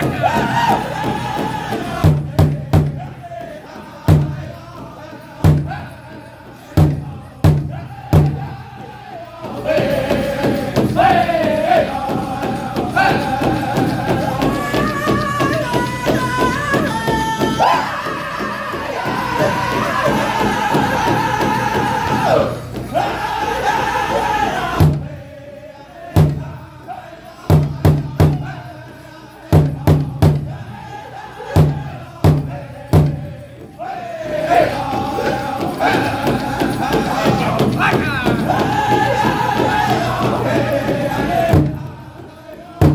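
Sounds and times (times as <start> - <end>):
large hide drum beats: 0.0 - 25.4, 26.1 - 26.8, 27.4 - 42.9
group singing: 0.0 - 42.9.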